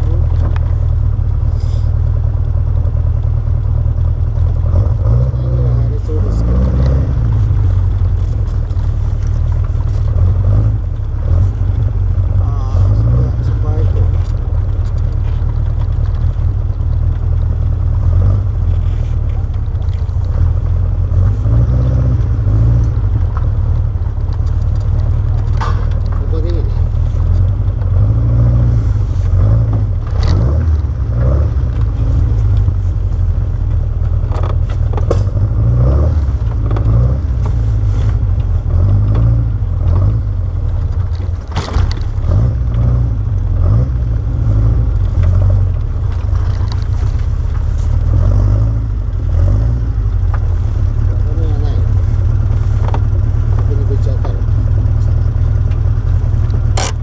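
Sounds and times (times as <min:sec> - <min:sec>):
car engine low rumble: 0:00.0 - 0:57.0.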